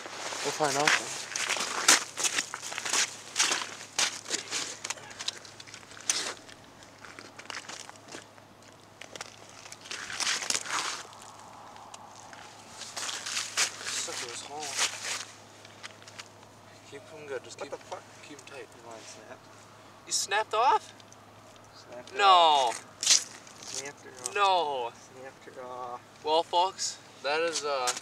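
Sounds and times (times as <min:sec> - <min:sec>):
boots crunching on snow: 0:12.2 - 0:15.4.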